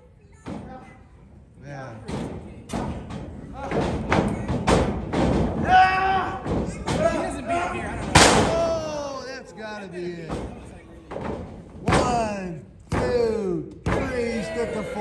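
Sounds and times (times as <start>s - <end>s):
thuds and slaps in wrestling ring: 2.1s - 5.8s
voices shouting: 14.0s - 15.0s.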